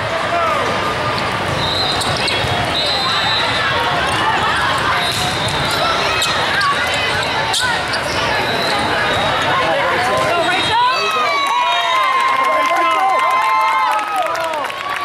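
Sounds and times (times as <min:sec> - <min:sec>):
many overlapping voices: 0:00.0 - 0:11.4.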